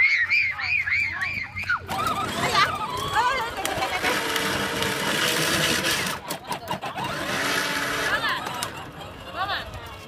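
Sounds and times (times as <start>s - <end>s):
toy car electric motor whirring: 1.8s - 10.0s.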